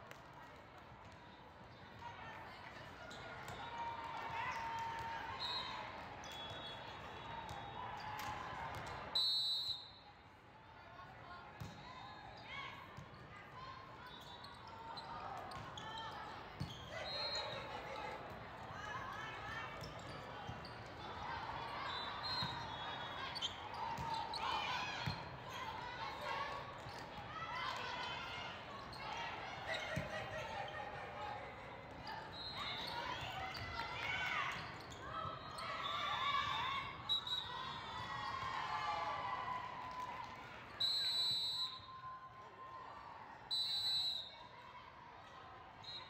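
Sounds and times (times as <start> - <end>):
referee's whistle: 5.3 - 8.0, 9.1 - 10.2, 16.7 - 17.7, 21.7 - 23.6, 32.2 - 33.0, 35.3 - 37.8, 40.7 - 42.1, 43.5 - 44.5, 45.8 - 46.0.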